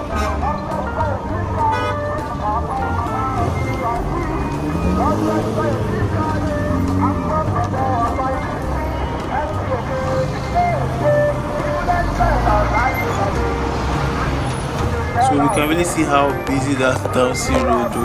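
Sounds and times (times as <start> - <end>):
car engines idling: 0.0 - 18.0
dump truck engine passing: 0.0 - 18.0.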